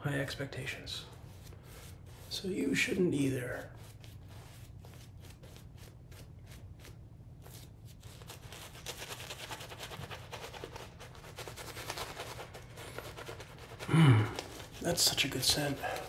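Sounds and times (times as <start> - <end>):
shaving brush scrubbing lather: 1.1 - 16.0.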